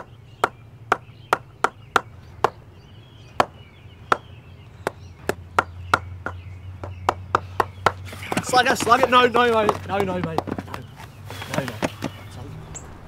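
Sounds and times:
wooden mallet knocking on bat: 3.4s - 8.5s.

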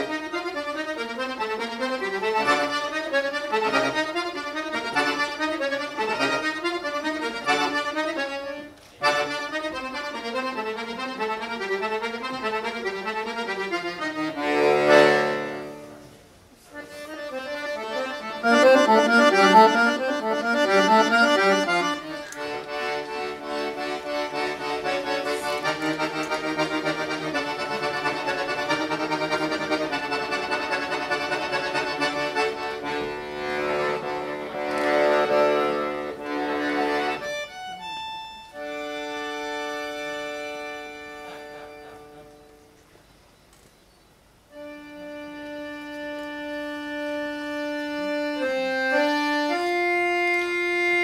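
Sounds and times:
accordion playing: 0.0s - 42.8s, 44.4s - 51.0s.

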